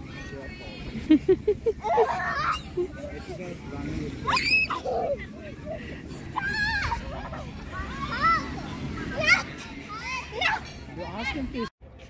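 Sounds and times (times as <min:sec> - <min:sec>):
children shrieking and calling out: 0:01.8 - 0:02.8, 0:04.2 - 0:05.4, 0:06.2 - 0:10.8.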